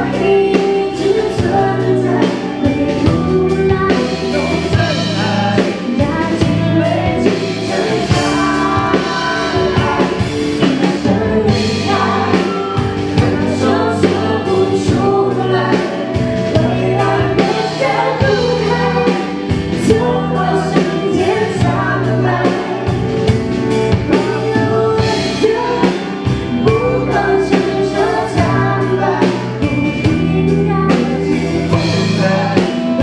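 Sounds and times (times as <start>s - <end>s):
band with drums: 0.0s - 33.0s
woman singing pop song: 0.0s - 33.0s.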